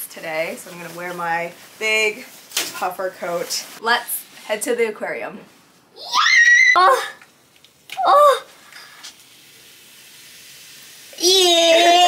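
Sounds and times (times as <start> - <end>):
soda fizzing and hissing: 7.6 - 12.0.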